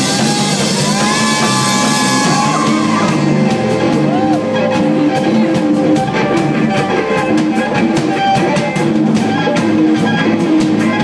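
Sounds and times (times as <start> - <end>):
drum and cymbal hits: 0.0 - 11.0
lead electric guitar solo: 0.0 - 11.0
rock band playing: 0.0 - 11.0.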